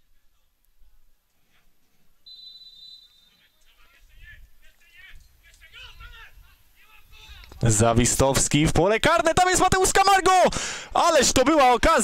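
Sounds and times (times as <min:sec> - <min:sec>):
referee's whistle blast: 0:02.2 - 0:03.6.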